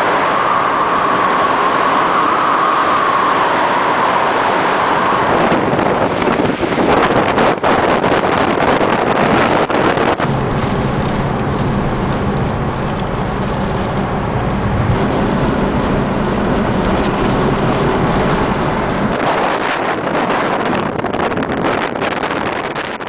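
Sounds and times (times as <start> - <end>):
car engine humming: 0.0 - 23.0
wind and rain battering a car: 0.0 - 23.0
wind buffeting the microphone: 0.0 - 23.0.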